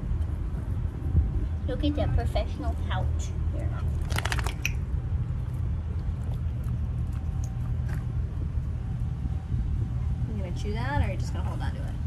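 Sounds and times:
low background rumble: 0.0 - 12.0.

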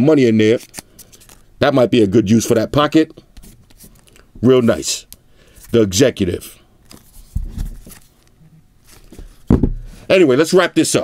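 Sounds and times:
phones being handled: 6.8 - 10.0
phones thumping on wooden table: 9.5 - 9.9.

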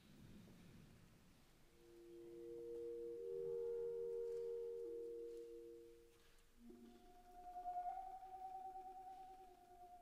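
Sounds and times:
clarinet sustained notes: 1.8 - 10.0.

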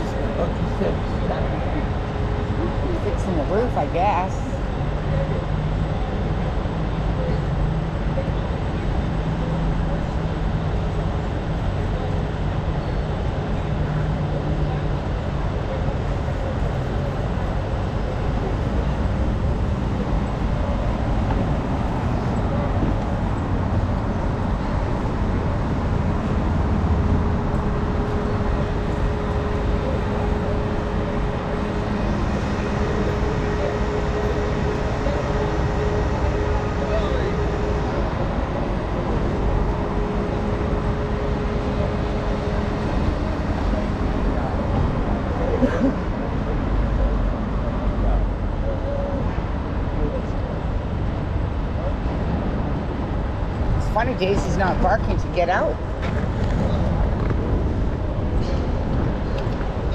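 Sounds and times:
steady humming tone: 0.0 - 59.9
street traffic: 0.0 - 59.9.

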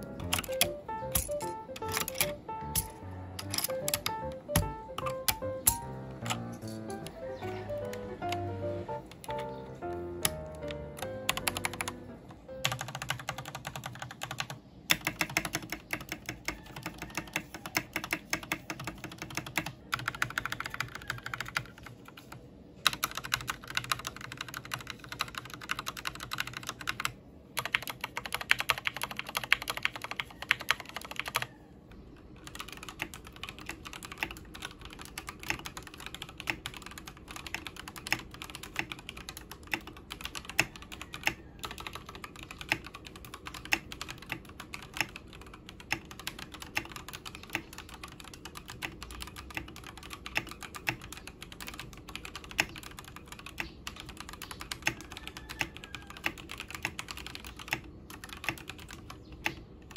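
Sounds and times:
mechanical keyboard clacks: 0.0 - 31.6, 32.2 - 59.9
typing on mechanical keyboard: 0.0 - 59.9.

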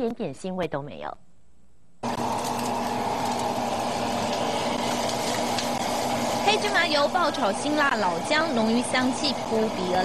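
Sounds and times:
gas burner rushing: 2.0 - 10.0.

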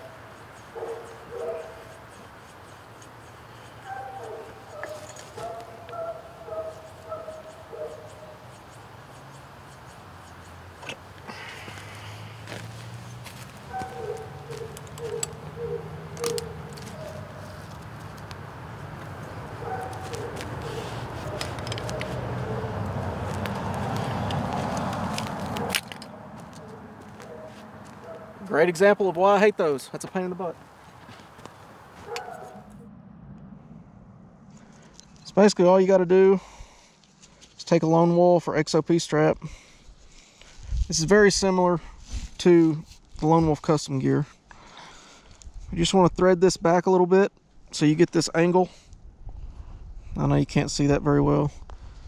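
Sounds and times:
road traffic noise: 0.0 - 37.6
ratchet strap clicking: 14.5 - 15.5, 16.1 - 18.4, 21.2 - 22.2.

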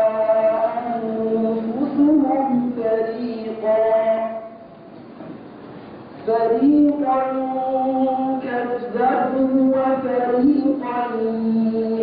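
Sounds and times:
low amplifier hiss: 0.0 - 12.0.

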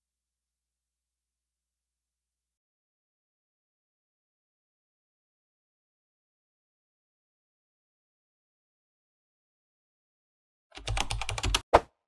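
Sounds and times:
keyboard typing clicks: 10.8 - 11.6.

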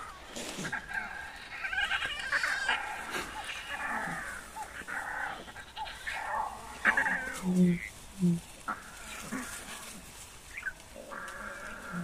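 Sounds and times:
lion cubs mewing: 0.0 - 12.0.

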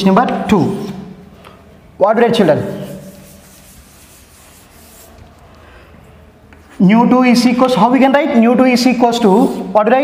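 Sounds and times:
cloth duster rubbing chalkboard: 2.4 - 5.4.

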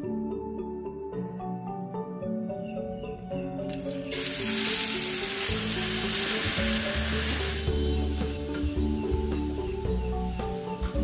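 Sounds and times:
paste sizzling in hot oil: 3.7 - 8.2.

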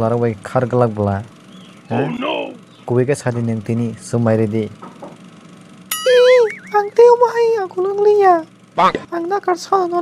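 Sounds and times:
higher voice speaking: 1.9 - 2.6, 6.1 - 7.9
man speaking: 1.9 - 4.6, 6.2 - 7.8, 8.8 - 9.1.

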